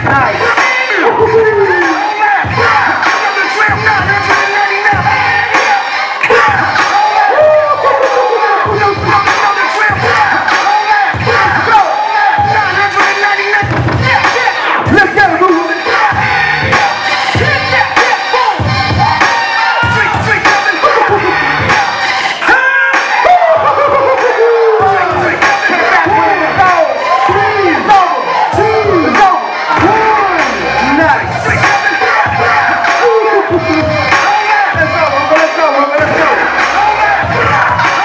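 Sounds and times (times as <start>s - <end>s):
crowd voices: 0.0s - 38.0s
hip hop track with heavy bass: 0.0s - 38.0s.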